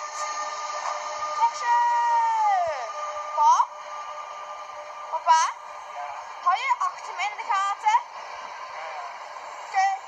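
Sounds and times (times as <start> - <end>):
electric train whine: 0.0 - 10.0.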